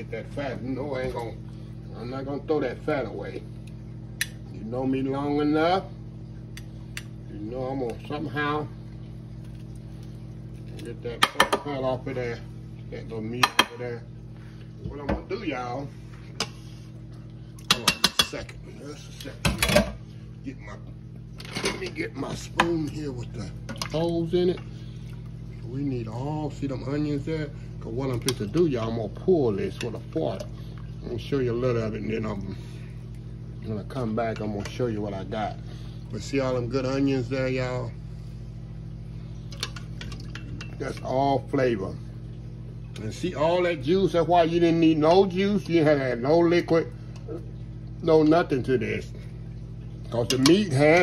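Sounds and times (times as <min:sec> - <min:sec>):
steady low hum: 0:00.0 - 0:51.0.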